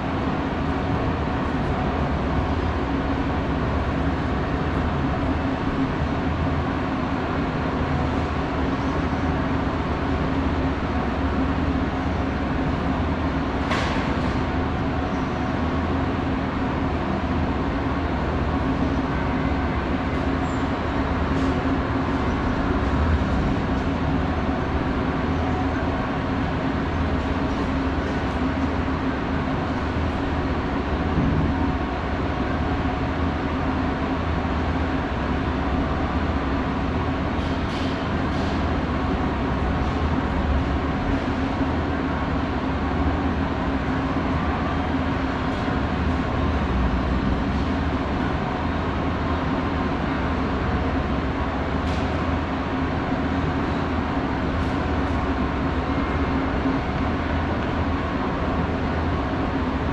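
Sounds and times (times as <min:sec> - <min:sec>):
moving walkway hum and rumble: 0:00.0 - 0:59.9.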